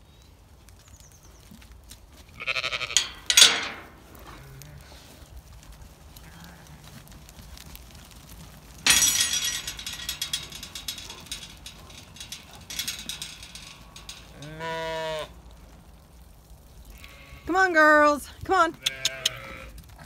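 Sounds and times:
sheep bleating: 0:02.4 - 0:03.1, 0:18.7 - 0:19.8
scuffling rustle: 0:03.8 - 0:08.9.

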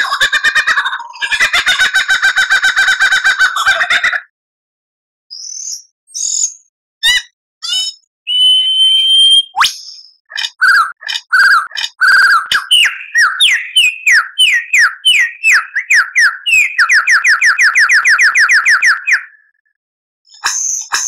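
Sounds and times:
lyrebird whistled song: 0:05.3 - 0:19.5, 0:20.3 - 0:21.0.

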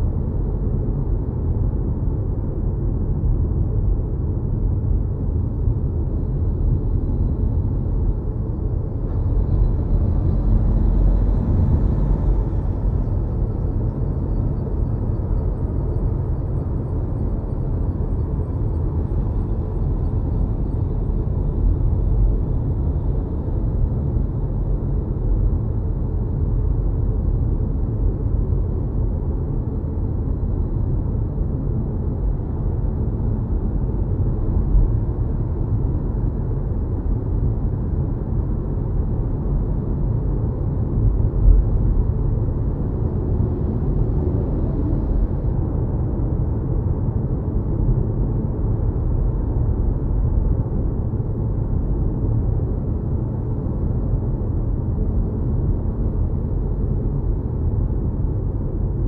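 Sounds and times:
road rumble and tyre noise: 0:00.0 - 0:59.0.

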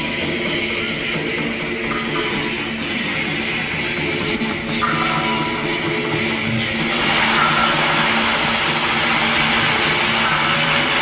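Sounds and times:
faint music: 0:00.0 - 0:11.0
loud steady noise: 0:00.0 - 0:11.0.

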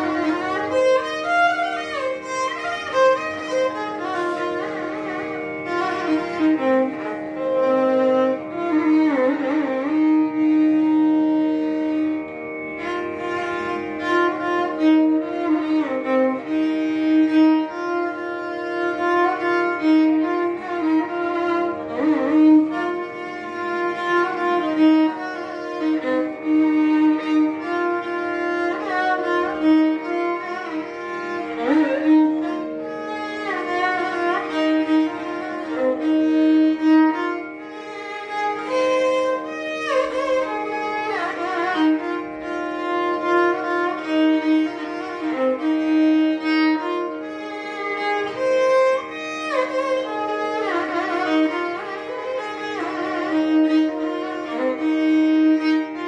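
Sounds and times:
steady drone note: 0:00.0 - 0:56.0
violin playing ornamented melody: 0:00.0 - 0:56.0.

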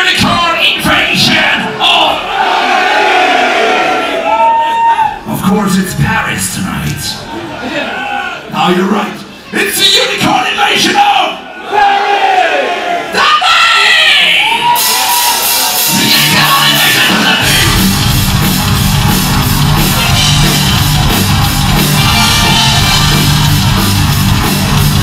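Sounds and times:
metal band playing: 0:14.7 - 0:25.0
singer yelling into a microphone: 0:15.9 - 0:17.8.

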